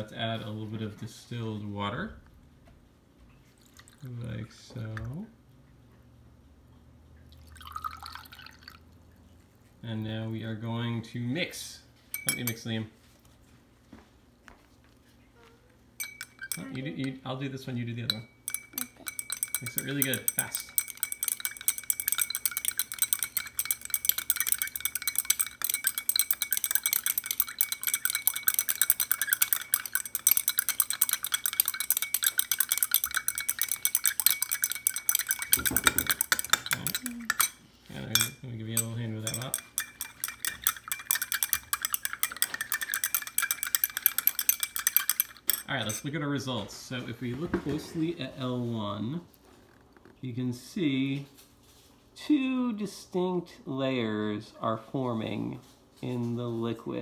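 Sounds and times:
water dripping into glass: 7.1 - 9.0, 18.1 - 45.9
stirring rods clinking on glass: 12.1 - 12.8, 16.0 - 46.6.

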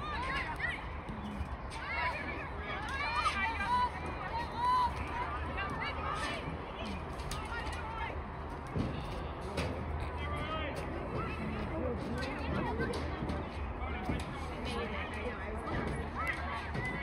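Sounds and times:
crowd voices and calls: 0.0 - 17.0.

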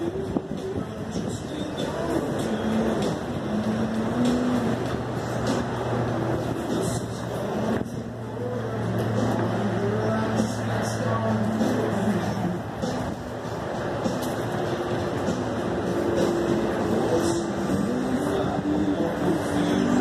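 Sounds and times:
people talking: 0.0 - 13.2, 15.3 - 20.0
low engine hum: 0.0 - 20.0
road noise rumble: 0.0 - 20.0.

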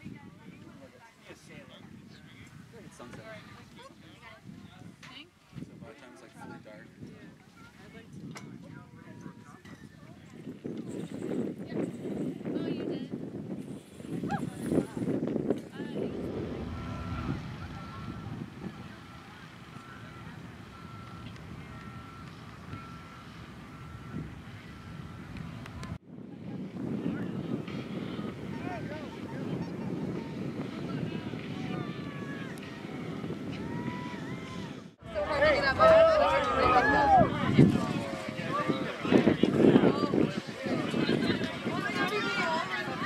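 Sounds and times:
low choppy rumbling: 13.4 - 42.0.

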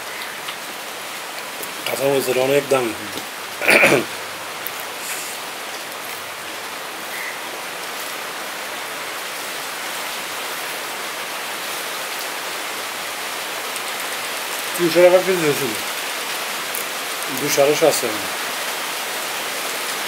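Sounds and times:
steady rain falling: 0.0 - 20.0.

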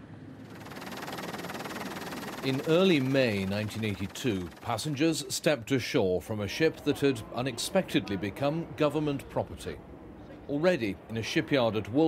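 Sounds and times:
helicopter rotor beating: 0.0 - 5.7.

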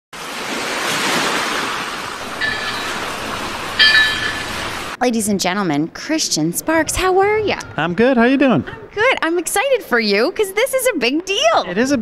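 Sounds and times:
ocean surf: 0.2 - 5.0
bright ringing tones: 2.2 - 5.0.

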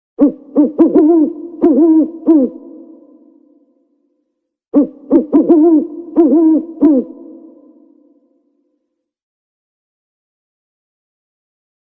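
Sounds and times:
owl hooting: 0.2 - 3.6, 4.7 - 8.2.

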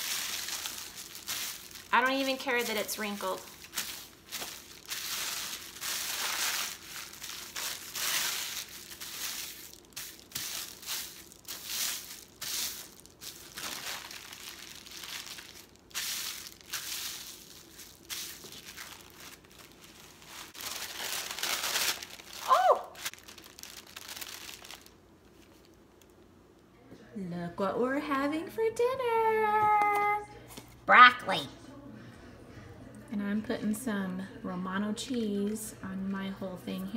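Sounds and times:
tissue paper crinkling: 0.0 - 25.8.

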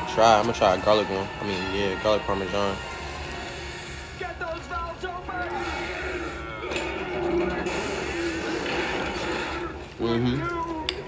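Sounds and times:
cartoon music with voices: 0.0 - 11.0.

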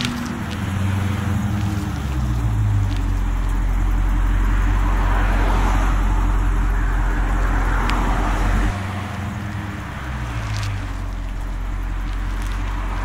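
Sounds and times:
car engine rumbling: 0.0 - 13.0
road noise: 0.0 - 13.0.

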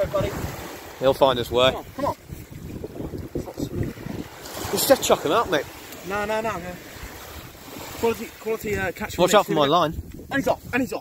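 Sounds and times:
surf washing on beach: 0.0 - 11.0
wind buffeting microphone: 0.0 - 11.0.

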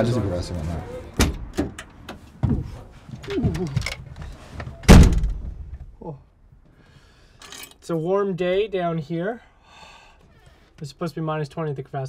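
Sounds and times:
car door slamming: 4.8 - 5.8.

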